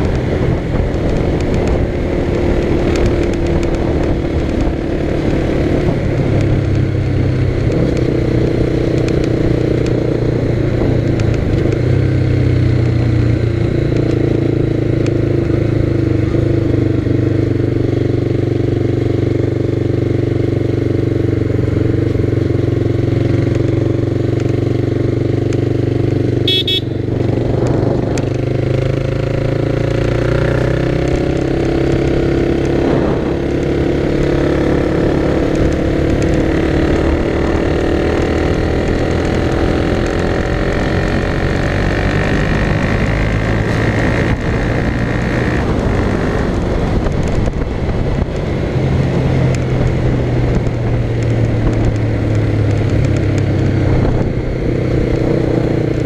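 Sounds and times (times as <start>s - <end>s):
motorcycle engine running: 0.0s - 56.0s.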